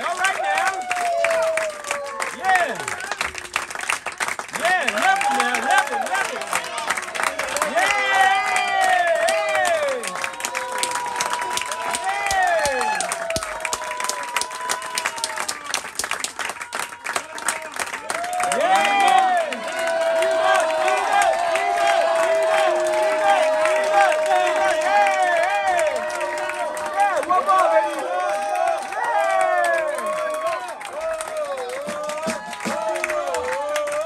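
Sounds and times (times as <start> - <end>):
crowd cheering and whooping: 0.0 - 3.6, 4.7 - 15.8, 18.0 - 34.0
audience clapping: 0.0 - 34.0.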